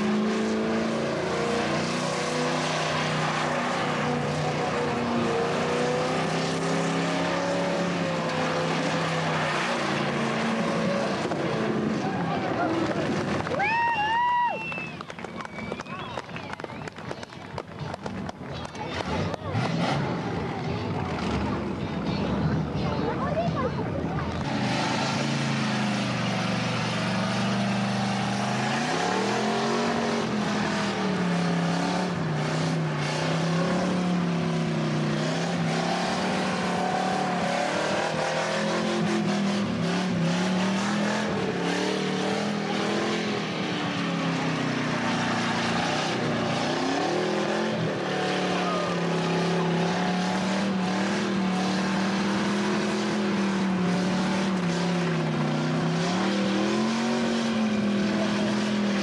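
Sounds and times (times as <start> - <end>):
car engine revving: 0.0 - 13.8, 14.6 - 59.0.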